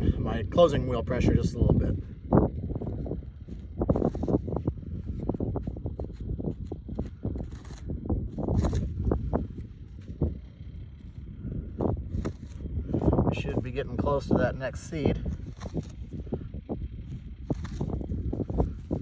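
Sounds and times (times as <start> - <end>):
wind rumble on microphone: 0.0 - 19.0
scraper scraping dry soil: 0.8 - 19.0.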